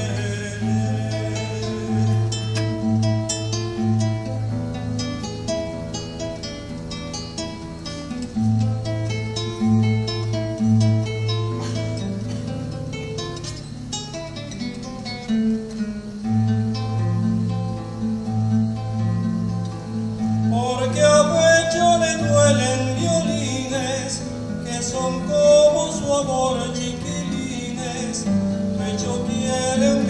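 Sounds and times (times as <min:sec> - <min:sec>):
acoustic guitar playing: 0:00.0 - 0:30.0.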